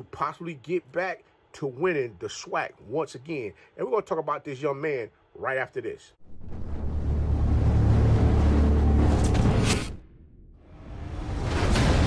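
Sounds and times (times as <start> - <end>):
deep rumbling drone: 6.2 - 10.6.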